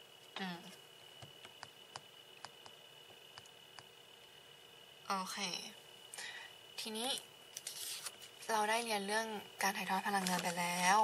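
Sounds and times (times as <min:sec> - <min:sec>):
paper rustling: 0:07.6 - 0:08.5, 0:10.1 - 0:11.0.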